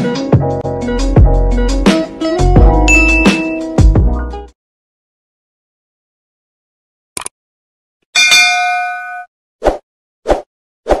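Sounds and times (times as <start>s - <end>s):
bell ding: 2.9s - 3.6s, 8.2s - 9.3s.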